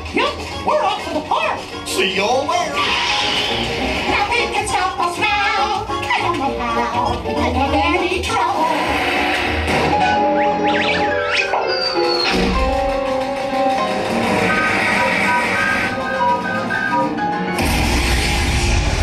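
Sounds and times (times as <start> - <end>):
bouncy cartoon music: 0.0 - 17.6.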